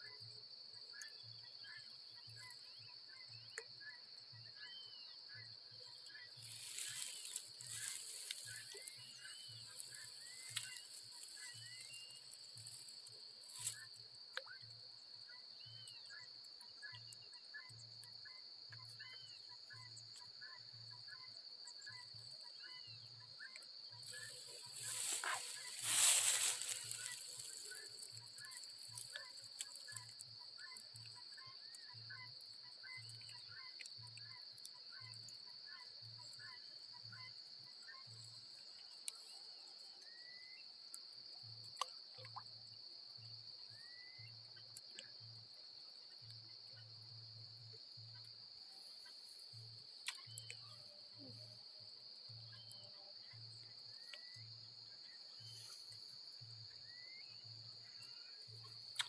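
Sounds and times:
insect chorus: 0:00.0 - 0:59.0
short chirping calls: 0:22.7 - 0:30.1.

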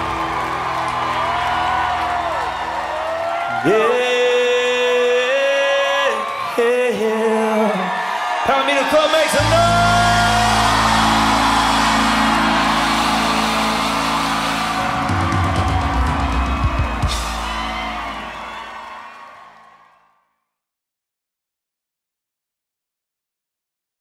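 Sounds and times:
crowd cheering: 0:00.0 - 0:20.3
rock band final chord: 0:09.4 - 0:18.8.

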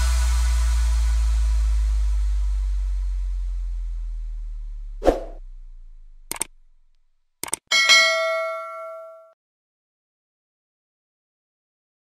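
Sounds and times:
bright bell ding: 0:07.7 - 0:09.4.

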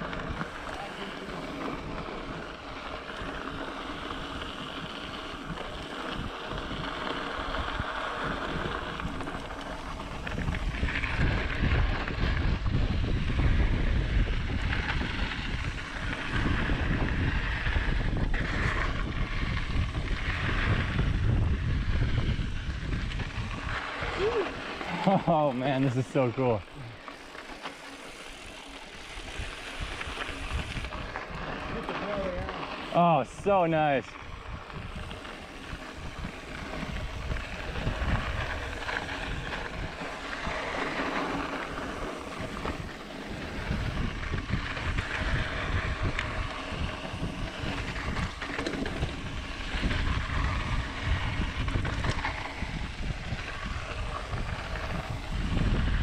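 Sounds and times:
tyres rolling on dirt: 0:00.0 - 0:56.0
wind buffeting microphone: 0:00.0 - 0:56.0.

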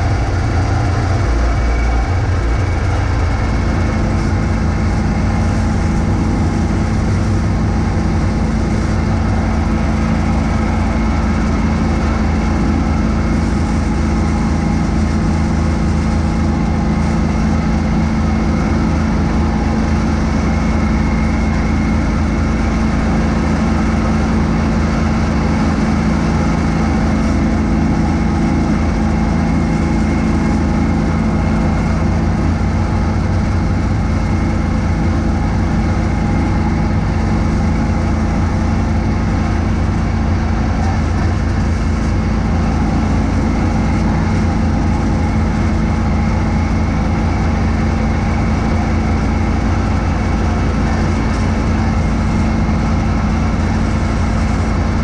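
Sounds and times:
garden tractor engine running: 0:00.0 - 0:55.0
snowblower throwing snow: 0:00.1 - 0:55.0.

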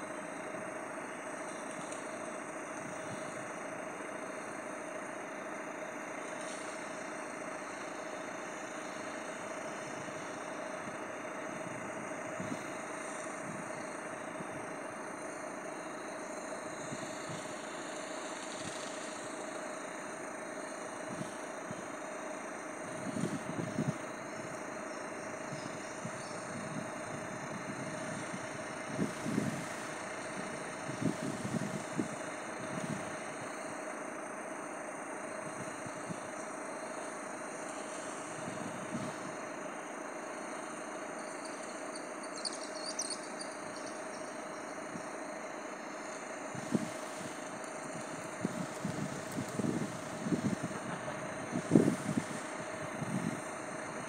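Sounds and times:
vehicle engine idling: 0:00.0 - 0:54.0.

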